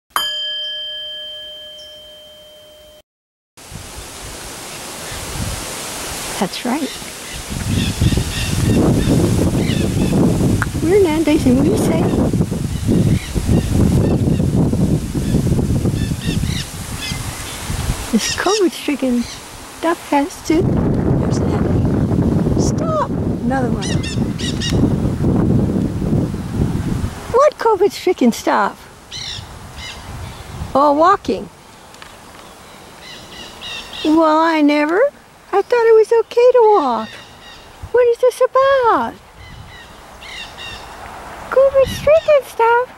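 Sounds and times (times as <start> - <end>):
struck bell chime: 0.1 - 3.0
outdoor hiss: 3.6 - 20.6, 24.4 - 42.9
wind rumbling on microphone: 3.6 - 31.6, 33.0 - 42.9
parakeets giving high calls: 6.6 - 10.1, 16.0 - 17.6, 18.2 - 19.4, 23.8 - 24.8, 29.1 - 30.4, 39.4 - 41.0.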